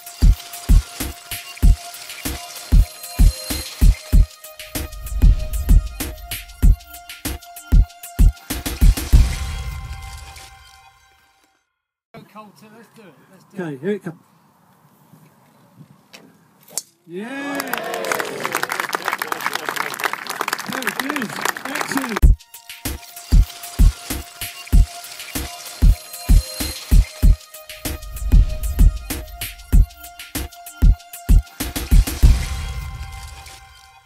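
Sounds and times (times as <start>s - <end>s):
intro music with thumping beat: 0.0s - 10.4s, 22.2s - 33.4s.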